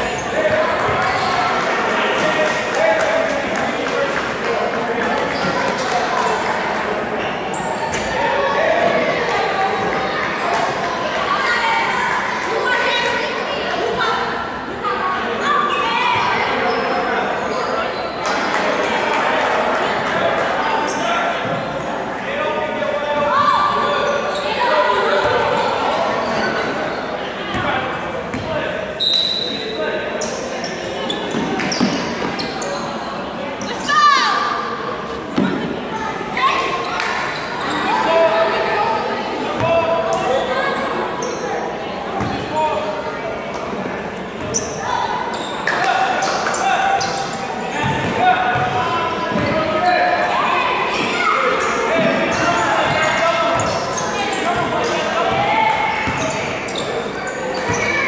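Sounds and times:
kids calling out: 33.7s - 34.7s.

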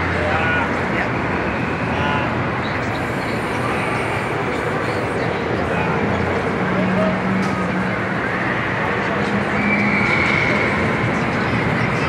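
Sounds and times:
mechanical din of amusement park: 0.0s - 12.0s.

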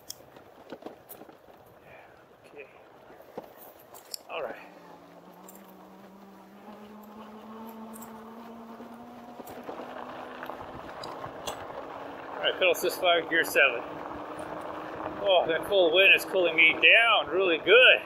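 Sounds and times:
tyre noise on dirt trail: 0.0s - 18.0s
electric hub motor whining: 4.3s - 18.0s.

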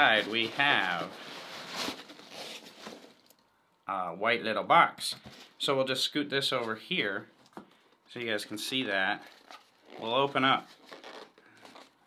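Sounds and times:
rustling paper and packing material: 0.0s - 3.4s, 9.1s - 12.0s.

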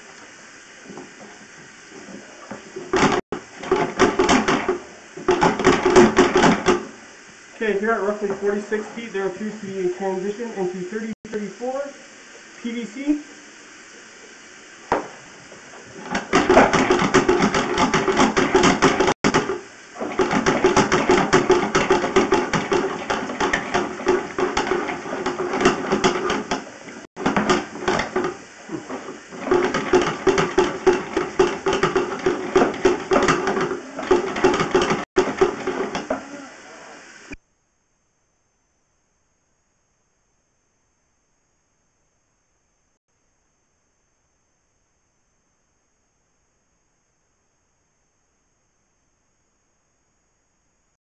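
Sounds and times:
steady hum: 0.0s - 51.0s.

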